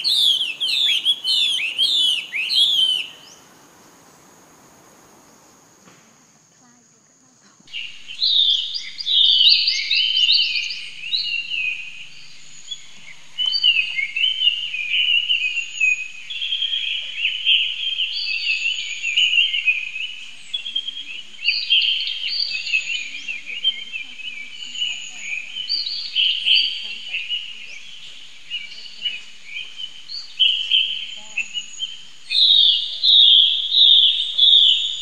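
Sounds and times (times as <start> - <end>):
birds chirping: 0.0 - 5.9, 6.6 - 35.0.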